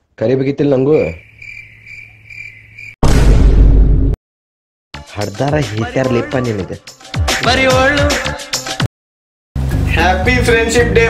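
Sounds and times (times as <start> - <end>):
cricket chirping: 0.9 - 3.0.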